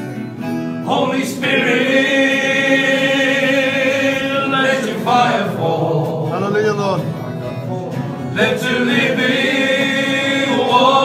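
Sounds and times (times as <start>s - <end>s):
men singing together: 0.8s - 11.0s.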